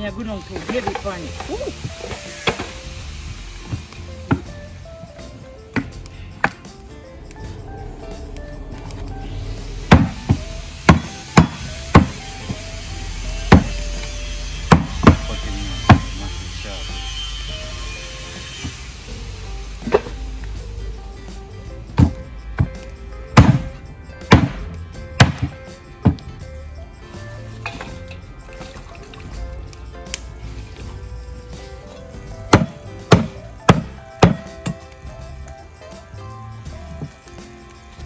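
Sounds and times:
background music: 0:00.0 - 0:38.0
machete chopping ribs on wood: 0:03.7 - 0:04.5, 0:05.7 - 0:06.7, 0:09.9 - 0:12.2, 0:13.5 - 0:13.8, 0:14.7 - 0:15.3, 0:22.0 - 0:22.8, 0:23.4 - 0:26.3, 0:32.5 - 0:34.9.

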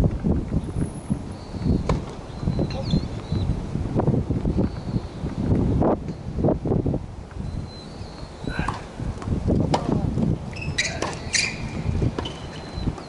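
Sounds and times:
wind on microphone: 0:00.0 - 0:13.0
tennis ball struck and bouncing: 0:01.8 - 0:02.2, 0:08.6 - 0:10.0, 0:10.8 - 0:12.5.

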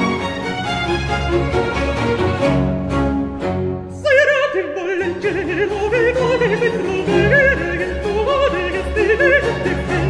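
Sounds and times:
string orchestra: 0:00.0 - 0:10.0
countertenor singing with vibrato: 0:03.9 - 0:10.0.

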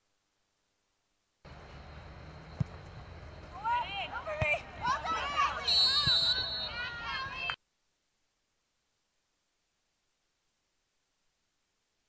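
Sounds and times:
crowd noise: 0:02.7 - 0:07.6
shrill whistle: 0:05.6 - 0:07.1.

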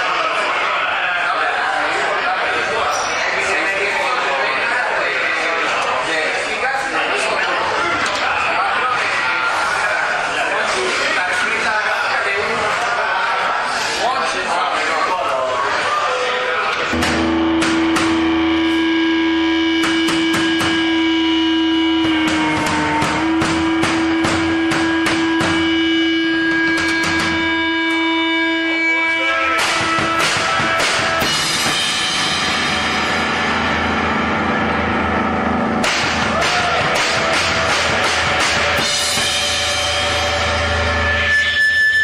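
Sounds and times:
drum and cymbal hits: 0:16.8 - 0:42.0
live rock music: 0:16.8 - 0:42.0
long held guitar note: 0:16.8 - 0:42.0.

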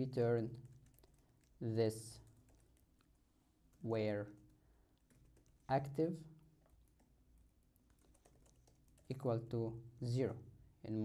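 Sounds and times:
keyboard typing: 0:00.4 - 0:06.0, 0:06.6 - 0:09.4.

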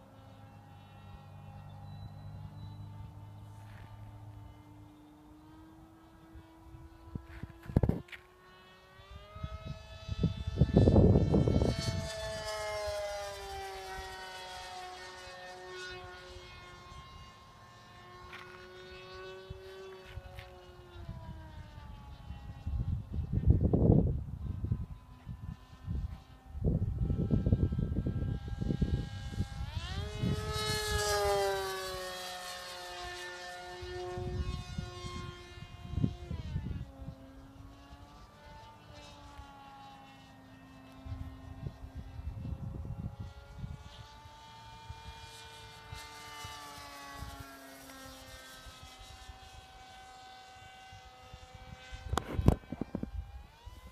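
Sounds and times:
electric model plane whining overhead: 0:00.0 - 0:53.9.

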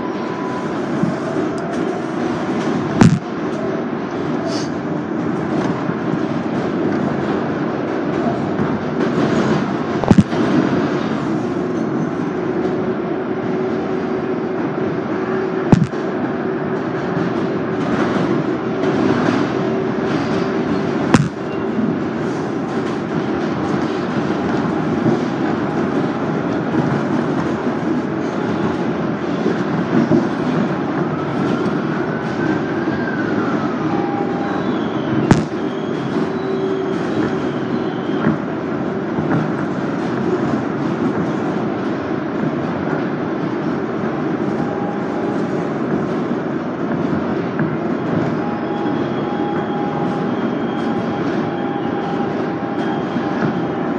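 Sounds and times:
train wheels rumbling on rail: 0:00.0 - 0:53.9
sharp cracks: 0:15.7 - 0:16.1, 0:35.3 - 0:35.7.

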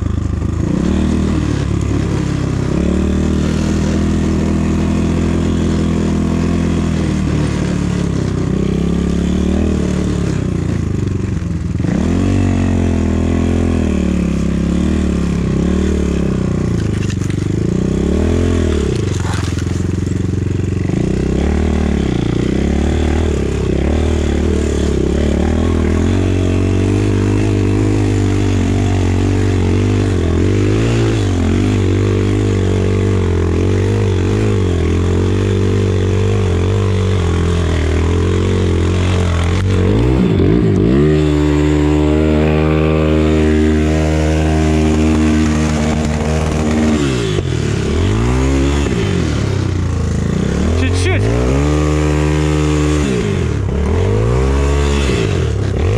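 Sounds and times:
motorcycle engine revving: 0:00.0 - 0:55.9.

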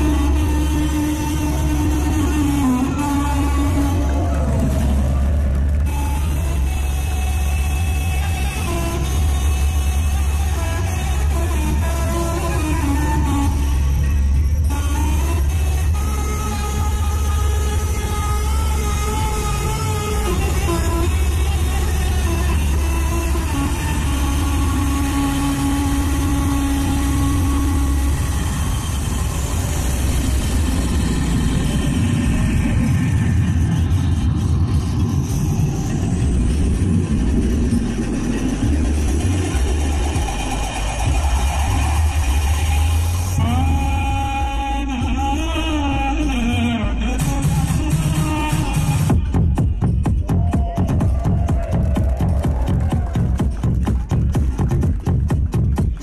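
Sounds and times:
loud bass-heavy music from speakers: 0:00.0 - 0:56.0
high rising sweep: 0:18.7 - 0:44.2.

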